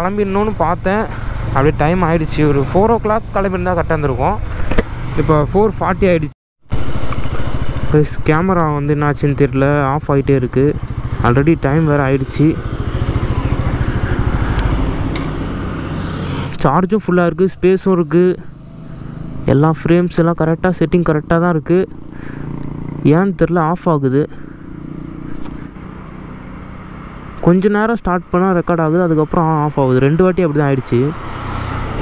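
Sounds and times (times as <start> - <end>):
man talking: 0.0 - 4.5, 5.2 - 6.4, 7.9 - 12.6, 16.6 - 18.5, 19.5 - 21.9, 23.0 - 24.4, 27.4 - 31.2
motorcycle engine running: 6.7 - 16.6, 18.1 - 27.4.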